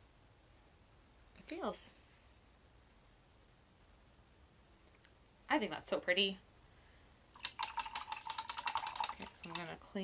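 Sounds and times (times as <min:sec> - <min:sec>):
paintbrush rattling in water container: 0:07.4 - 0:10.0.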